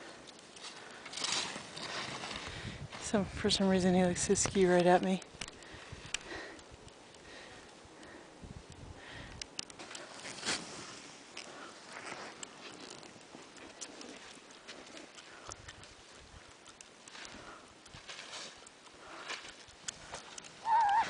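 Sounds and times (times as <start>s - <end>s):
heavy breathing: 5.6s - 8.4s
skis crunching on snow: 9.8s - 20.7s.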